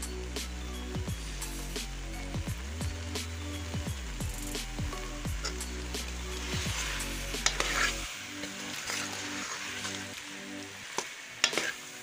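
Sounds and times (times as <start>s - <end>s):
food sizzling in a pot: 0.0s - 12.0s
metal spoon stirring and scraping: 5.4s - 12.0s.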